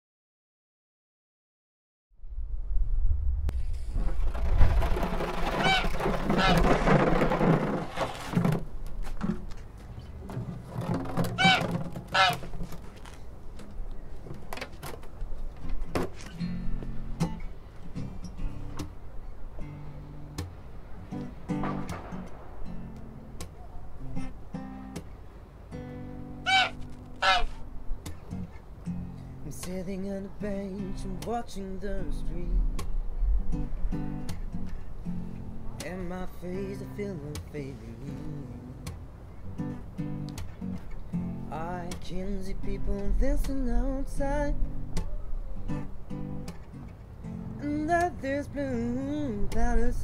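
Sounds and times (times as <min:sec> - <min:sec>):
wind rumble on microphone: 0:02.2 - 0:07.9, 0:31.4 - 0:34.2
knocks of guitars being picked up: 0:05.2 - 0:13.1
goose honking: 0:05.3 - 0:06.9, 0:11.3 - 0:12.7, 0:26.4 - 0:27.6
acoustic guitar chord ringing: 0:19.6 - 0:23.4, 0:24.0 - 0:25.0, 0:25.7 - 0:32.9, 0:33.5 - 0:45.0
loud short bird calls: 0:26.5 - 0:27.6.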